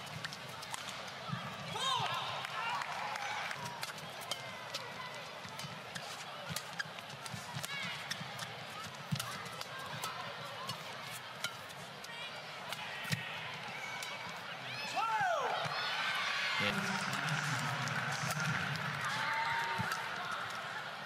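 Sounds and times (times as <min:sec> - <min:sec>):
shoes squeaking on court: 0:05.9 - 0:08.6
crowd murmur: 0:08.6 - 0:21.0.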